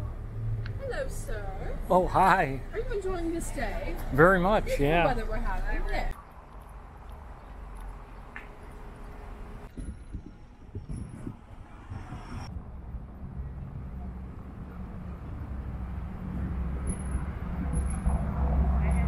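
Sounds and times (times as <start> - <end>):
vehicle engine rumble: 0.0 - 19.0
faint voices of passers-by: 12.7 - 19.0.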